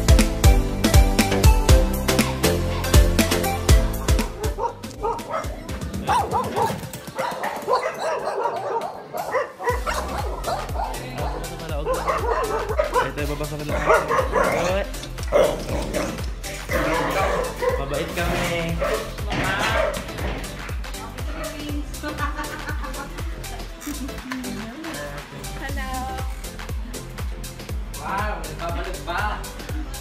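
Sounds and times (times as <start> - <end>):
pop music with steady beat: 0.0 - 30.0
dog barking: 4.4 - 20.2.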